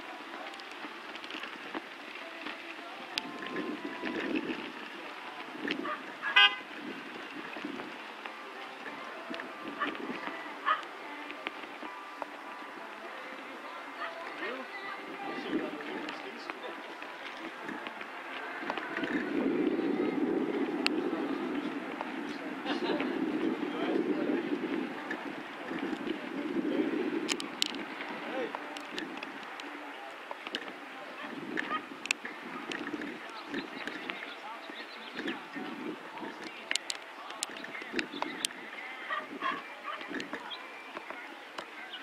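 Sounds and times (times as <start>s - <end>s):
indistinct voices talking: 0.0s - 42.0s.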